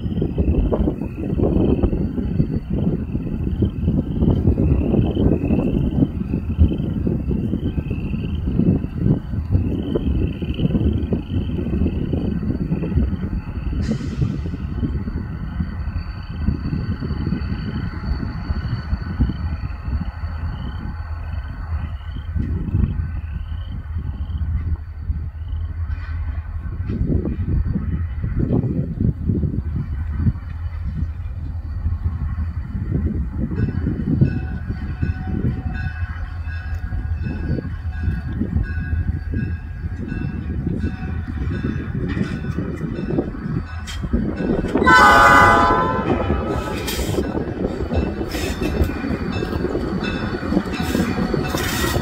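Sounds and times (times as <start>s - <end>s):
diesel locomotive rumbling: 0.0s - 52.0s.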